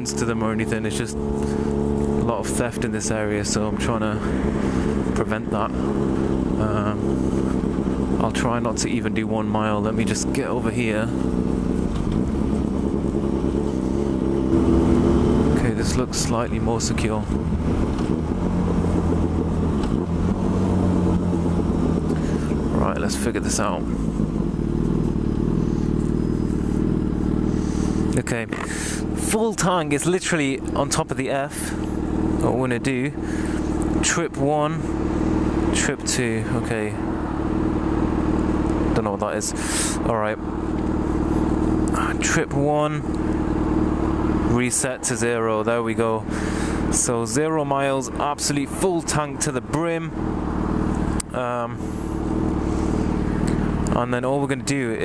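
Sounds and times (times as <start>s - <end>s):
motorcycle engine idling: 0.0s - 55.0s.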